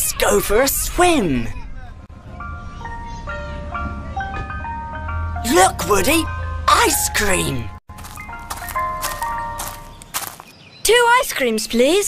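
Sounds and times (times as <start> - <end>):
ice cream van chiming tune: 2.1 - 10.2.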